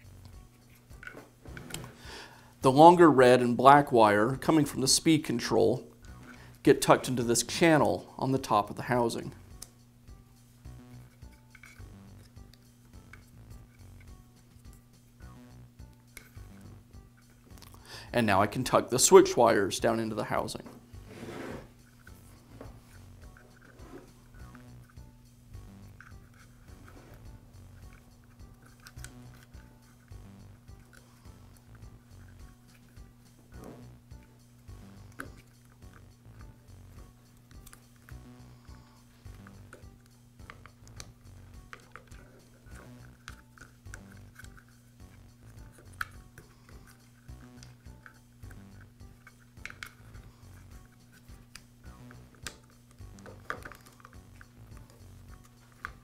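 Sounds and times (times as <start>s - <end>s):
low electrical hum: 0.0s - 56.0s
wires and plastic parts clicking: 11.0s - 14.8s, 25.8s - 33.0s, 33.7s - 36.5s, 37.2s - 56.0s.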